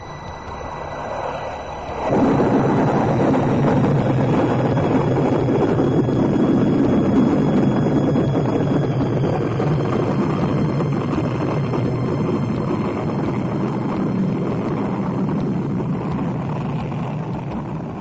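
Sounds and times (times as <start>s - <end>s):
rocket engines roaring: 0.0s - 18.0s.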